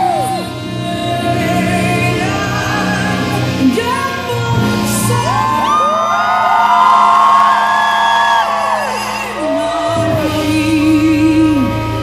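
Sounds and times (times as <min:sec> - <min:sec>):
audience whooping and cheering: 0:00.0 - 0:00.6, 0:05.0 - 0:10.2
woman singing into a microphone: 0:00.0 - 0:06.4, 0:08.5 - 0:12.0
live band playing: 0:00.0 - 0:12.0.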